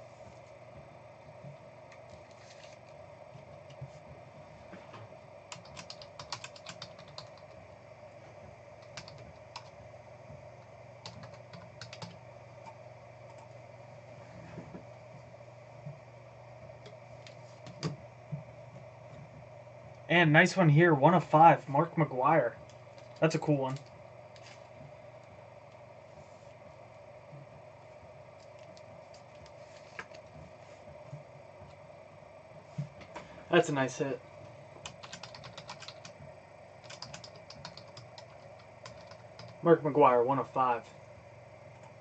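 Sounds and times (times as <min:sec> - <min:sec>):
background hum: 0:00.0 - 0:42.0
keyboard typing: 0:05.5 - 0:07.6, 0:08.8 - 0:09.8, 0:11.0 - 0:13.6, 0:17.2 - 0:18.0, 0:22.7 - 0:24.5, 0:34.8 - 0:36.2, 0:36.8 - 0:39.6.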